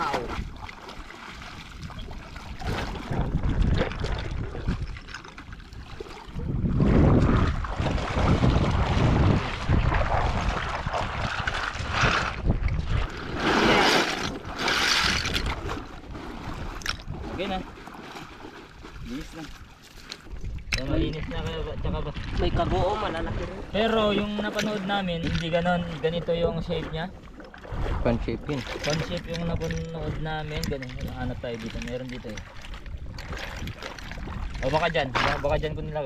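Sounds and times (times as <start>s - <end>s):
river water sloshing and splashing: 0.0s - 36.0s
wind buffeting microphone: 1.5s - 17.6s, 20.2s - 36.0s.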